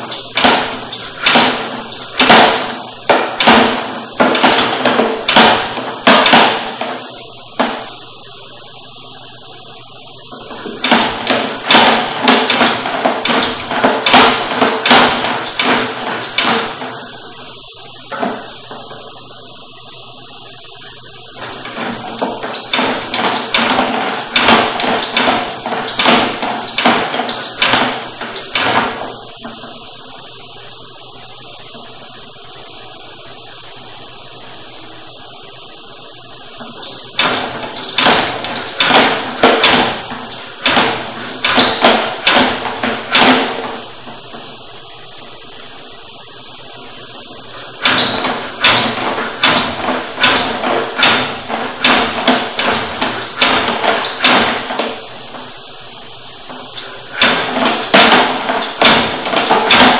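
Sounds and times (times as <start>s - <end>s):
cable knocking and rattling in drain: 0.0s - 7.9s, 10.3s - 17.2s, 18.1s - 19.1s, 21.3s - 29.8s, 36.6s - 44.5s, 47.5s - 55.5s, 56.4s - 59.9s
faint steady hum: 0.0s - 59.9s.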